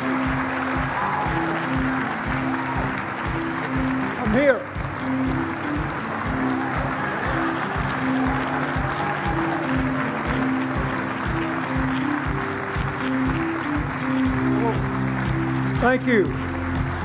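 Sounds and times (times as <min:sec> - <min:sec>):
large audience applauding: 0:00.0 - 0:17.0
walk-on music with steady beat: 0:00.0 - 0:17.0.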